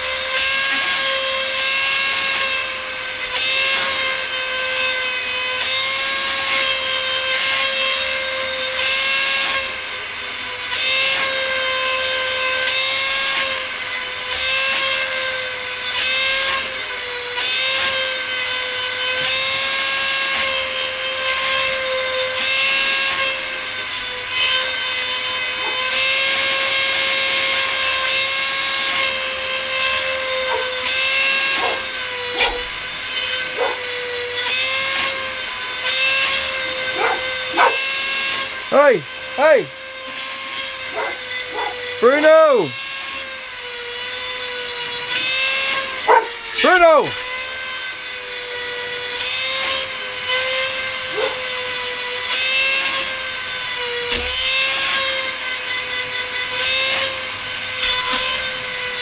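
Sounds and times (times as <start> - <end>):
rotary tool grinding chain: 0.0 - 59.0
dog barking: 31.6 - 32.7, 33.5 - 33.9, 36.9 - 37.8, 40.9 - 41.8, 46.1 - 46.4, 51.2 - 51.5.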